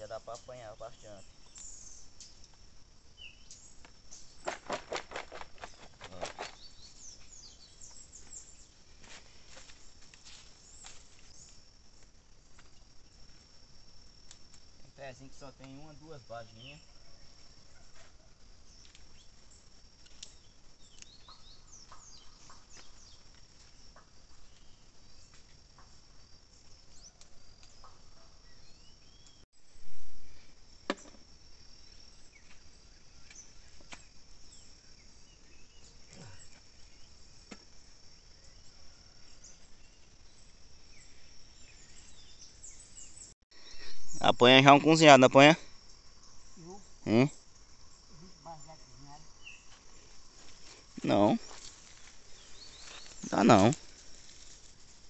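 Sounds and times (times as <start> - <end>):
crickets trilling: 0.0 - 55.0.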